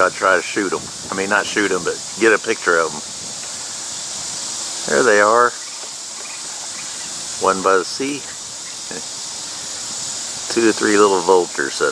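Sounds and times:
man speaking: 0:00.0 - 0:03.1, 0:04.8 - 0:05.6, 0:07.4 - 0:09.1, 0:10.5 - 0:11.9
high-pitched hiss: 0:00.0 - 0:11.9.

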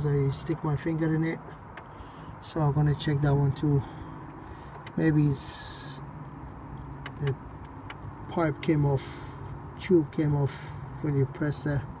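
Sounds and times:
vehicle engine idling: 0:00.0 - 0:12.0.

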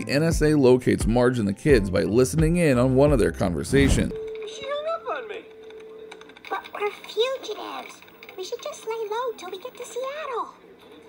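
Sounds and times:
computer keyboard typing: 0:05.5 - 0:10.0.

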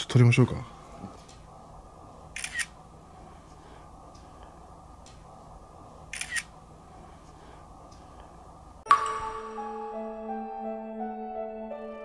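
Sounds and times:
camera shutter click: 0:02.4 - 0:02.7, 0:06.2 - 0:06.5.

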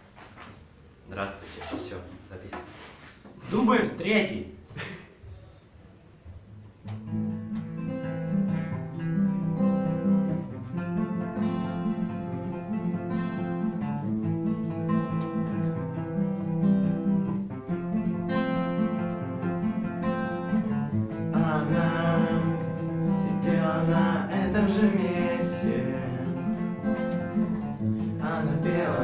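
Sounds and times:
acoustic guitars playing: 0:06.5 - 0:29.0.

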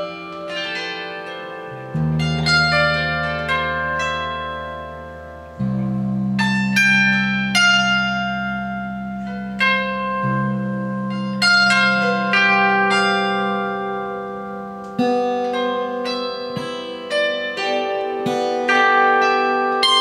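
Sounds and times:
low bass guitar notes: 0:00.0 - 0:17.6
plucked harp-like guitar notes: 0:00.0 - 0:20.0.

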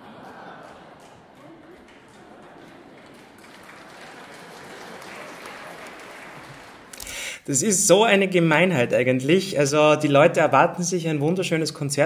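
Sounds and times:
audience applauding softly: 0:00.0 - 0:07.5.

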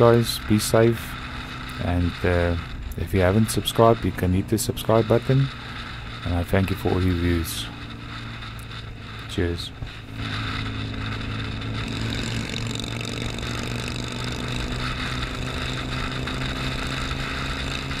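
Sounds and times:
motorcycle engine cruising: 0:00.0 - 0:18.0
wind rushing over microphone: 0:00.0 - 0:18.0.

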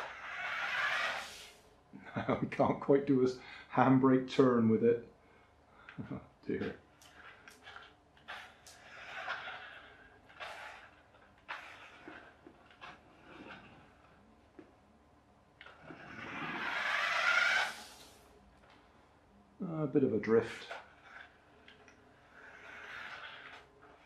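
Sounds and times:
tyres scrubbing on wooden floor: 0:00.0 - 0:01.6, 0:06.6 - 0:14.2, 0:15.7 - 0:18.3, 0:20.3 - 0:24.0
toy car electric motor whirring: 0:00.0 - 0:01.7, 0:06.7 - 0:14.3, 0:15.6 - 0:18.3, 0:20.4 - 0:24.0.

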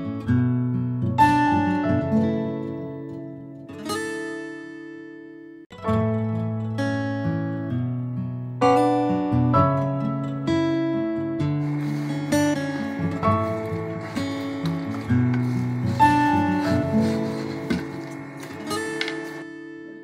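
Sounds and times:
acoustic guitar music: 0:00.0 - 0:20.0.

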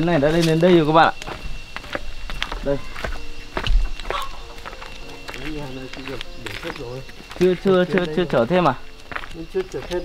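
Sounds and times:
background voices talking: 0:00.0 - 0:10.0
footsteps on gravel path: 0:00.0 - 0:10.0.

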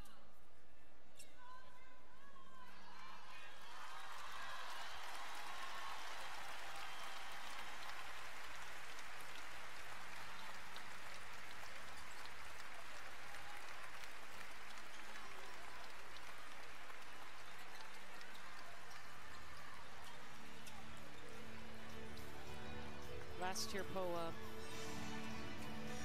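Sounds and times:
crowd applauding: 0:02.9 - 0:26.0.

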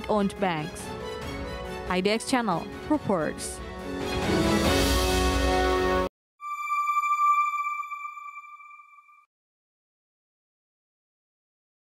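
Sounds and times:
bright electronic chime: 0:06.4 - 0:09.3.

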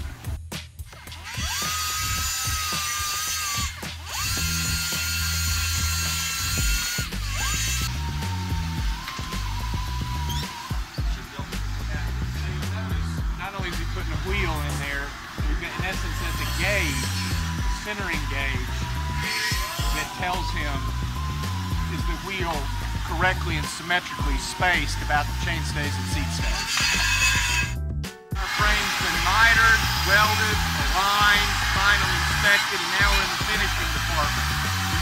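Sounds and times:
background music: 0:00.0 - 0:35.0
machine high whine: 0:01.2 - 0:35.0.

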